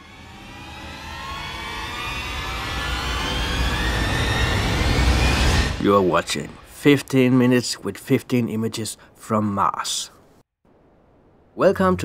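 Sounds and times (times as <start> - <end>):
rising tones riser: 0.0 - 6.8.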